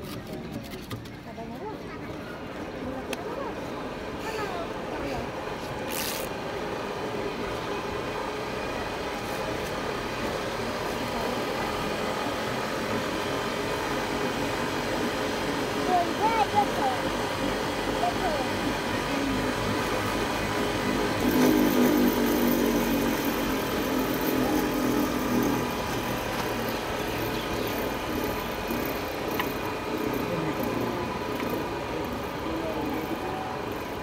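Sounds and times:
cotton candy machine running: 0:00.0 - 0:34.0
indistinct voices talking: 0:10.0 - 0:34.0.

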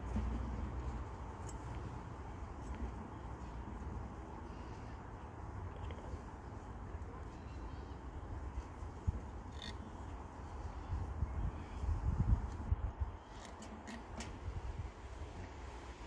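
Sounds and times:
wind rumble on microphone: 0:08.1 - 0:16.0.

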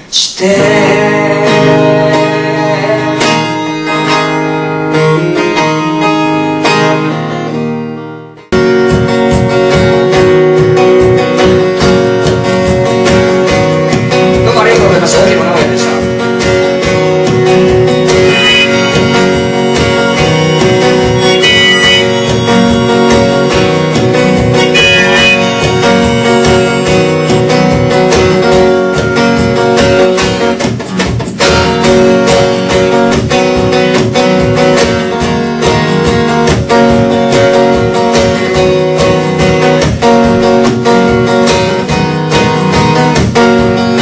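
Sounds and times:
strummed acoustic guitar: 0:00.0 - 0:44.0
harmonica: 0:18.0 - 0:29.0.

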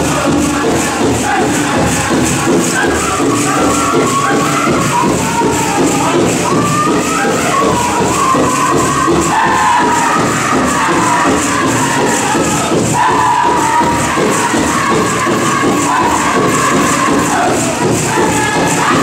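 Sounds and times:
group singing high-pitched vocables: 0:00.0 - 0:19.0
steady drumbeat: 0:00.0 - 0:19.0.

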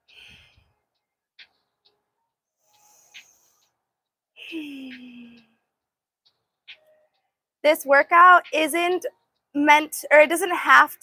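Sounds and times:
woman sighing: 0:04.4 - 0:05.6.

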